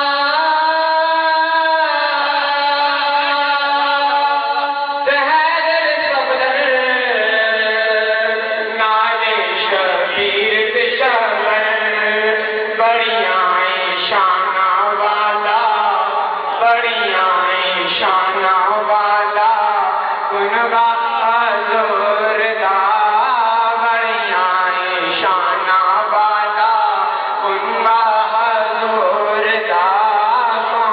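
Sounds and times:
man chanting into a microphone: 0:00.0 - 0:30.9.

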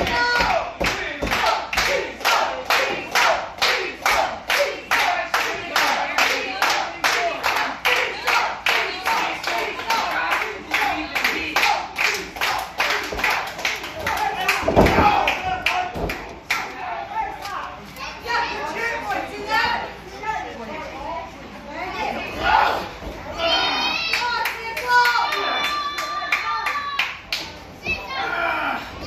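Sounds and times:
voices: 0:00.0 - 0:29.0
audience clapping in unison: 0:00.8 - 0:16.7.

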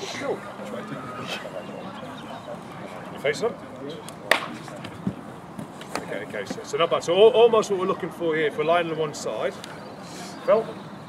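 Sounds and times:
sharp hand clap: 0:04.1 - 0:05.0
dull thump of players on ground: 0:04.3 - 0:06.7.

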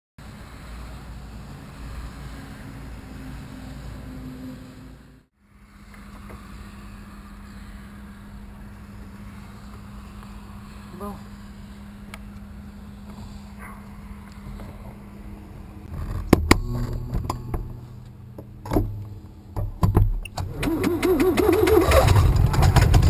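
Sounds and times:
light aircraft engine idling: 0:05.4 - 0:15.9.

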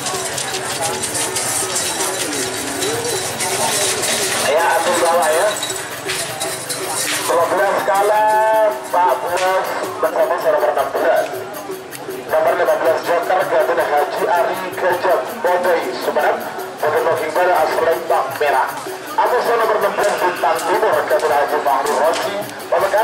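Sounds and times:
music with wavering melody: 0:00.0 - 0:23.0
voices: 0:00.0 - 0:23.0.

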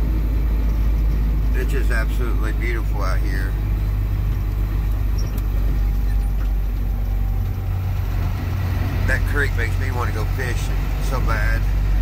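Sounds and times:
truck engine running: 0:00.0 - 0:12.0.

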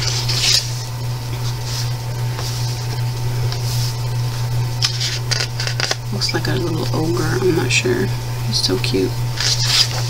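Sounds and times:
hand rustling paper pages: 0:00.0 - 0:06.0, 0:09.4 - 0:10.0
steady low hum: 0:00.0 - 0:10.0.

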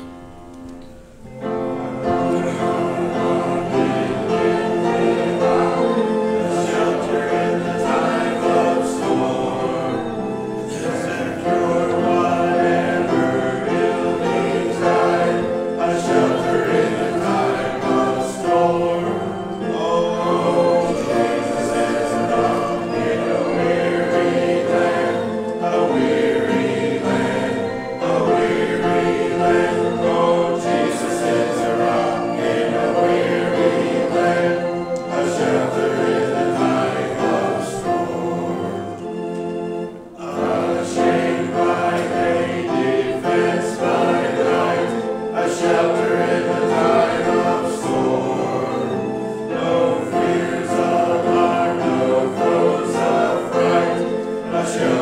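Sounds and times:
congregation singing a hymn: 0:00.0 - 0:55.0.

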